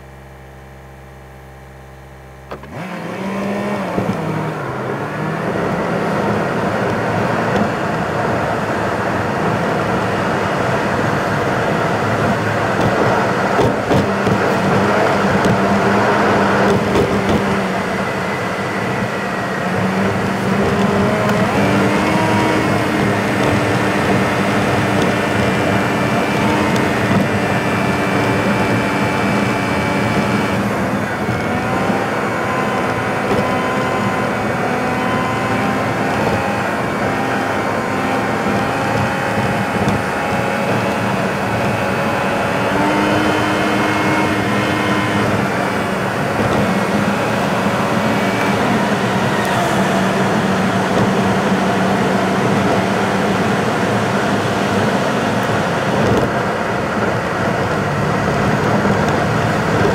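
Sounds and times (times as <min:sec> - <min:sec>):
car engine and tyre road noise: 0:00.0 - 0:59.9
humming tones shifting in pitch: 0:00.0 - 0:59.9.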